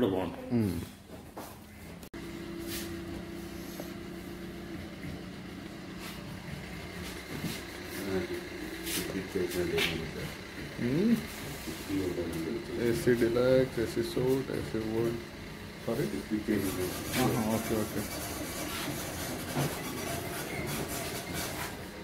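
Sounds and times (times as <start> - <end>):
low mechanical hum: 0.0 - 22.0
people talking: 8.0 - 8.4, 9.0 - 11.3, 11.9 - 15.2, 15.9 - 18.2.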